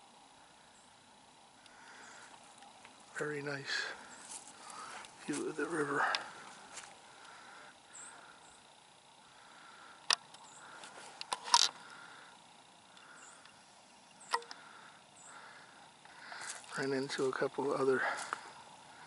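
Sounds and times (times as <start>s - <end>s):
riverside outdoor ambience: 0.0s - 19.0s
sharp clicks: 10.0s - 11.8s, 14.2s - 14.6s.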